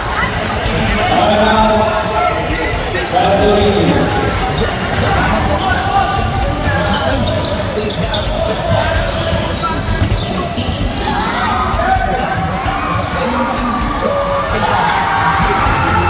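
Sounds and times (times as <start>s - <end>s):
crowd chatter and shouting: 0.0s - 16.0s
basketball dribbling on hardwood: 5.6s - 11.1s.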